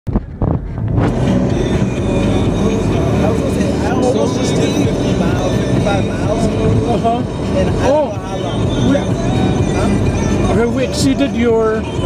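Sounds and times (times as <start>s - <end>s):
car road and engine noise: 0.1s - 12.0s.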